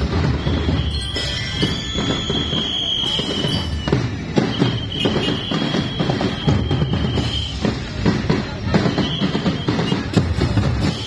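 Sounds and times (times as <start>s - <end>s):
marching band drums beating: 0.0s - 11.0s.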